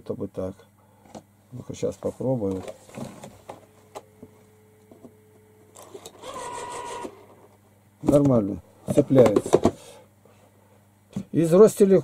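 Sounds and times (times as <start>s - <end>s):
telephone dial tone: 5.8s - 7.2s.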